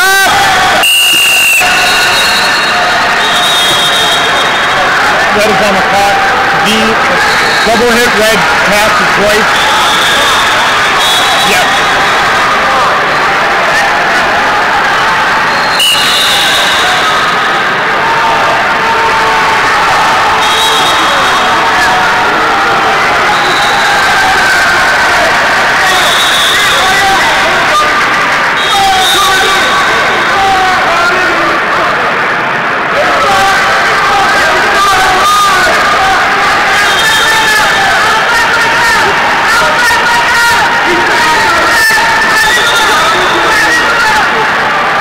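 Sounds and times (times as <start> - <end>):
crowd shouting: 0.0 - 45.0
referee whistle blasts: 0.7 - 4.9, 9.5 - 12.0, 15.5 - 17.6, 20.4 - 21.5, 23.3 - 24.0, 25.9 - 26.9, 28.6 - 30.3, 36.8 - 37.5.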